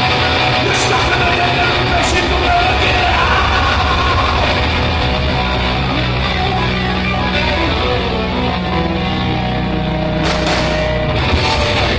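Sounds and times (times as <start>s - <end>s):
drum kit: 0.0s - 9.2s, 10.1s - 11.9s
bass guitar: 0.0s - 11.9s
electric guitars: 0.0s - 11.9s.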